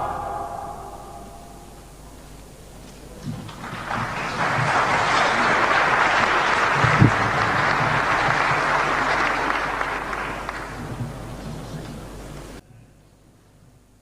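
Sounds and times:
audience applauding: 3.1s - 12.6s.

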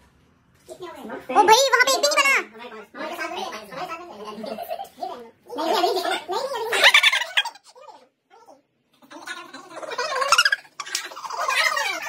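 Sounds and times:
animated voices of people: 1.3s - 12.0s.

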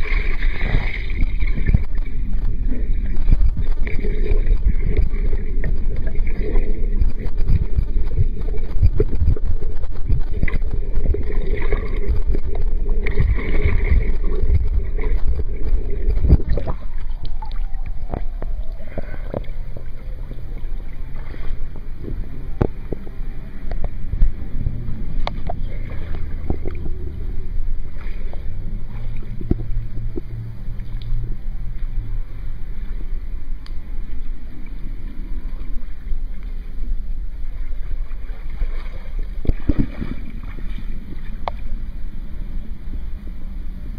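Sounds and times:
wind on microphone: 0.0s - 20.4s
water splashes and drips: 0.0s - 24.4s, 27.9s - 31.9s, 37.5s - 41.8s
underwater water rumble: 0.0s - 43.9s.

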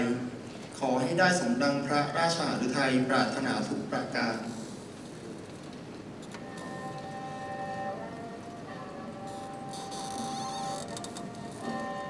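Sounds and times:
classical ensemble playing slowly: 6.3s - 12.0s.

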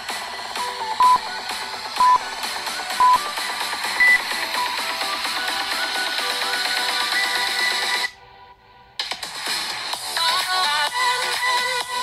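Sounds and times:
electronic dance music: 0.0s - 8.2s, 9.0s - 12.0s
timer countdown beeps: 0.9s - 1.3s, 2.0s - 2.3s, 2.9s - 3.3s, 4.0s - 4.4s
higher-pitched timer beep: 1.0s - 1.3s, 2.0s - 2.2s, 3.0s - 3.2s, 4.0s - 4.2s.

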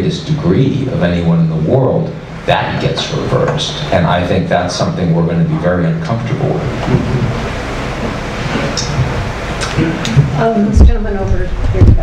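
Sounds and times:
low rumbling room noise: 0.0s - 12.0s.

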